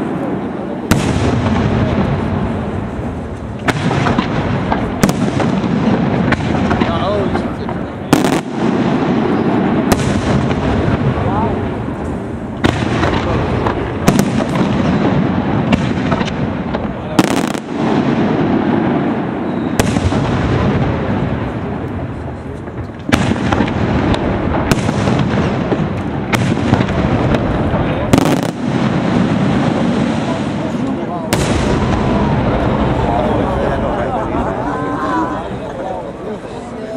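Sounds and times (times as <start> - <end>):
continuous fireworks din: 0.0 - 36.9.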